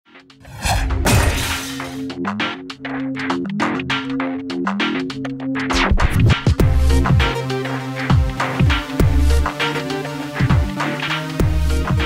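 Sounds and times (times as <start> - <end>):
deep boom: 0.5 - 2.0.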